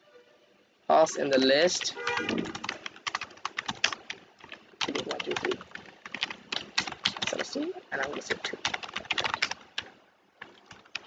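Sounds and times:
keyboard typing: 1.3s - 11.0s.

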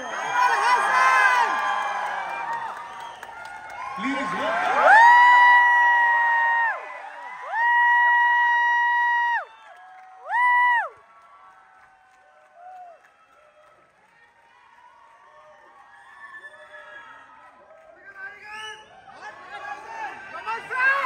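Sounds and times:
fans screaming: 0.0s - 9.5s
crowd cheering: 0.0s - 21.0s.

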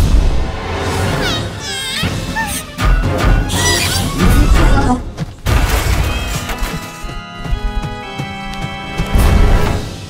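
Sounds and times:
cartoon music: 1.0s - 5.0s
falling squeaky sweep: 3.4s - 4.3s.

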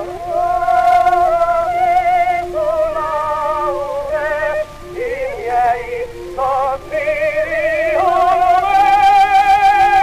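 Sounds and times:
opera duet with orchestra: 0.0s - 10.0s.

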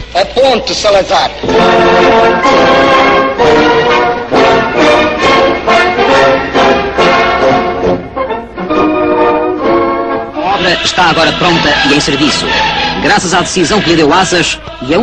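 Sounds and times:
brass-led orchestral music: 1.4s - 15.0s.

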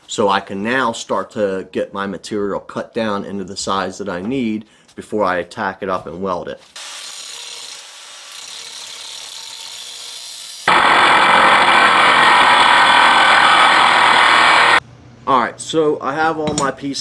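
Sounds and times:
angle grinder cutting steel: 6.8s - 14.8s.

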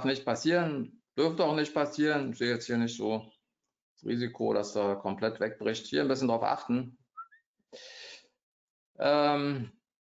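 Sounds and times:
man speaking: 0.0s - 3.4s, 4.0s - 7.0s, 9.0s - 9.8s
man breathing in: 7.7s - 8.4s.

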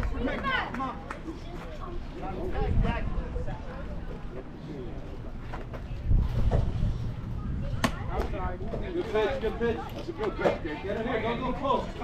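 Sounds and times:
faint voices: 0.0s - 12.0s.

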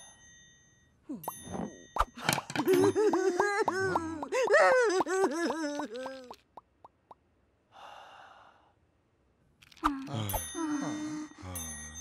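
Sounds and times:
cartoon character voices: 3.4s - 6.4s.

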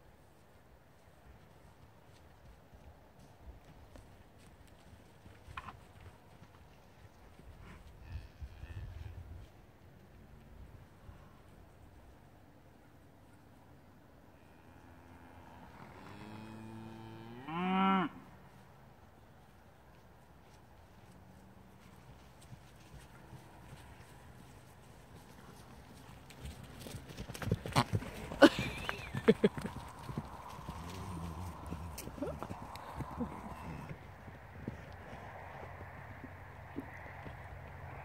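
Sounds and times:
hooves thudding on turf: 0.3s - 8.0s, 19.2s - 38.0s
cow mooing: 14.4s - 18.2s.

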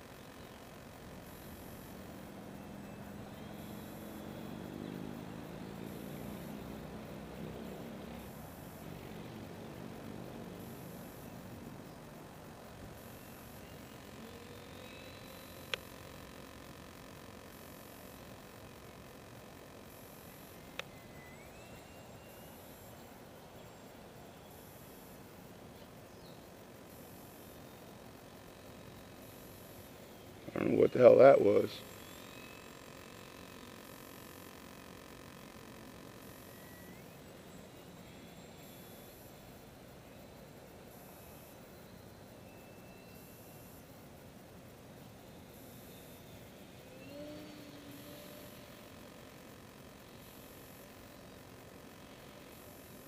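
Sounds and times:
rc plane electric motor whine: 0.0s - 25.4s, 26.1s - 53.0s
steady hiss: 0.0s - 53.0s
sharp clicks: 15.3s - 16.4s.

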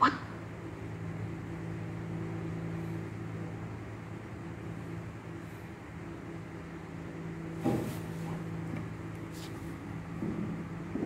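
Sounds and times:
low electrical hum with hiss: 0.0s - 11.0s.

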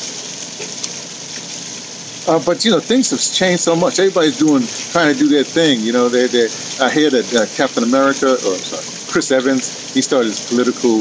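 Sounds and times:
waterfall rushing and splashing: 0.0s - 11.0s.

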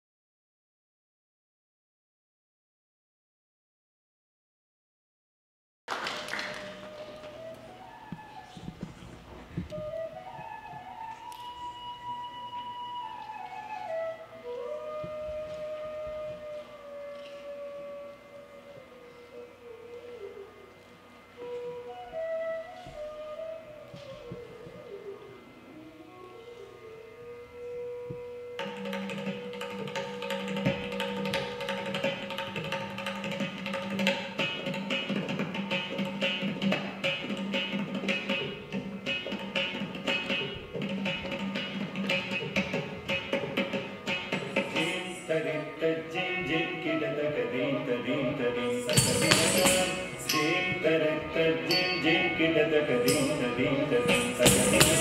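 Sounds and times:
solo flute melody: 6.1s - 33.3s, 44.0s - 55.0s
drum rhythm: 48.7s - 50.9s, 53.0s - 55.0s.

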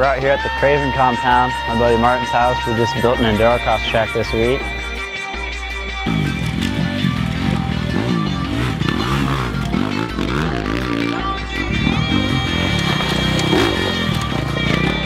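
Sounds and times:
background music: 0.0s - 15.0s
dirt bike engine revving: 6.0s - 15.0s.

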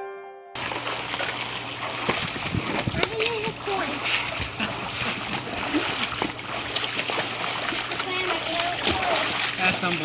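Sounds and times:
water splashing: 0.6s - 10.0s.

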